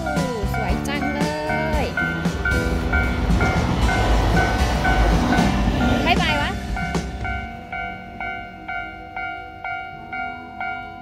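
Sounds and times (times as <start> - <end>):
level-crossing bell ringing: 0.0 - 5.1, 5.9 - 11.0
train passing rumble: 0.0 - 11.0.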